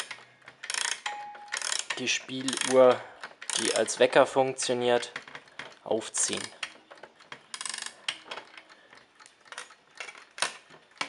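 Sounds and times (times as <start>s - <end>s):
clock spring ratchet clicking: 0.0s - 4.1s, 5.0s - 11.0s.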